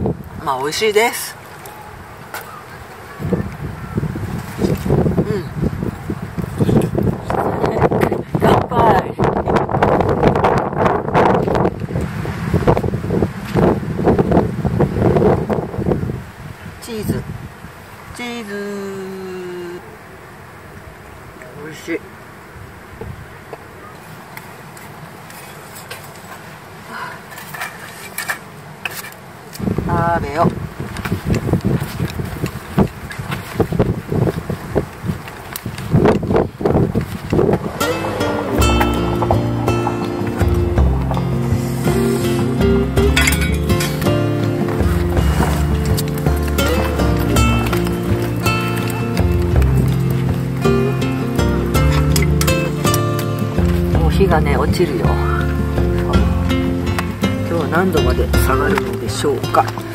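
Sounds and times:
strong wind gusts on microphone: 0.0s - 18.3s, 29.5s - 56.4s
campfire crackles: 0.0s - 59.9s.

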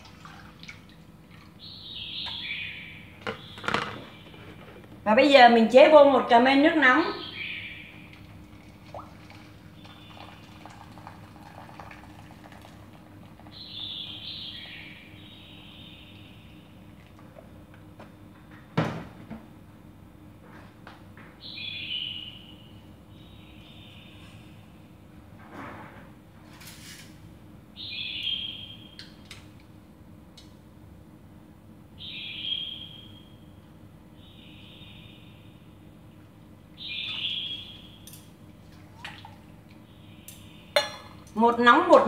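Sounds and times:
hot water pouring into steel can: 8.6s - 13.5s.

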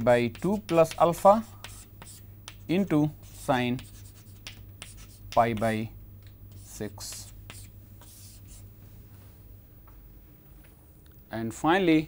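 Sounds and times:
faint room hum: 0.0s - 12.0s
chalk scratching on chalkboard: 0.3s - 5.6s, 6.5s - 8.7s.

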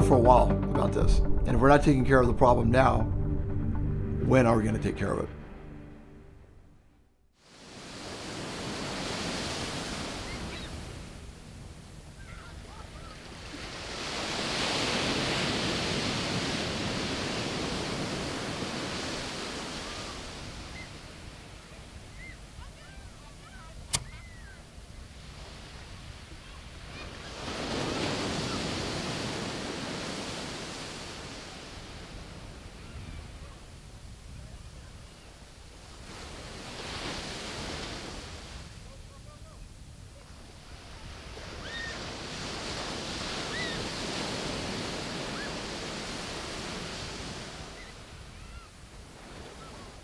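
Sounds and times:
surf breaking on a beach: 7.4s - 50.0s
sharp click: 23.9s - 24.2s.

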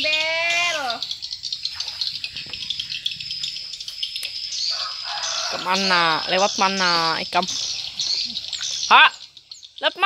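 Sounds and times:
high-pitched chirping and trilling: 0.0s - 10.0s.

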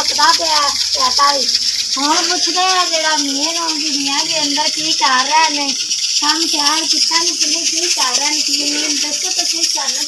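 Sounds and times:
high-pitched hiss: 0.0s - 10.0s
woman talking: 0.0s - 10.0s.

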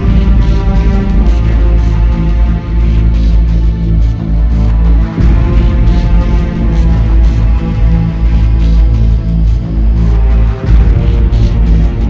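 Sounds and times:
deep sustained bass: 0.0s - 12.0s.

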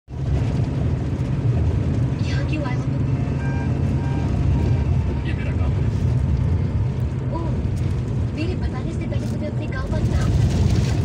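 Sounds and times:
vehicle low rumble: 0.1s - 11.0s.

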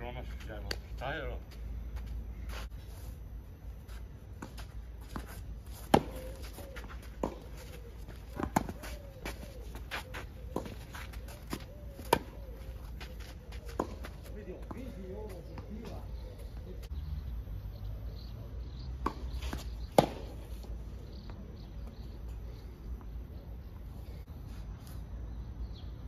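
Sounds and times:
tennis ball bouncing: 4.4s - 12.4s, 13.7s - 16.5s, 19.0s - 20.6s.

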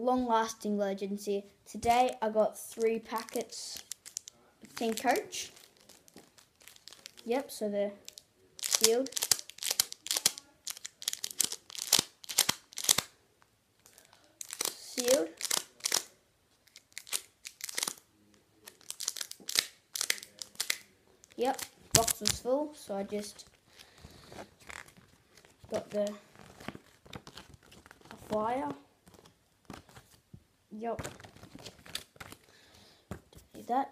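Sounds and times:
foil packets crinkling: 2.7s - 7.3s, 8.0s - 13.1s, 13.8s - 18.0s, 18.6s - 22.4s, 23.2s - 30.2s, 31.0s - 32.7s.

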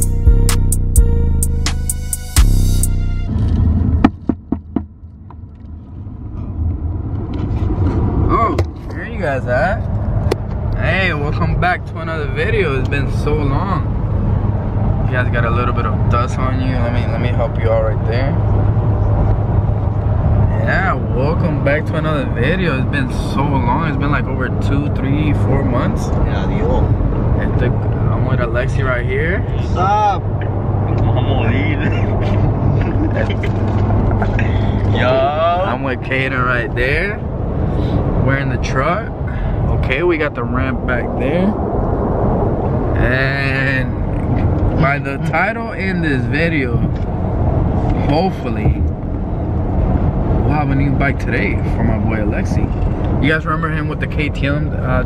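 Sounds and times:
road and engine noise in car: 0.0s - 55.0s
truck cabin rumble: 0.0s - 55.0s
voices: 20.4s - 37.2s, 38.2s - 41.7s, 43.0s - 47.0s.

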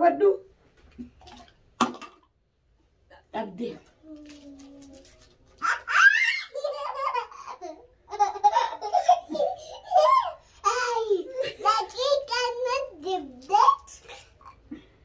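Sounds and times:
woman's voice: 0.0s - 0.5s, 3.1s - 3.9s
young child laughing: 5.6s - 12.1s.

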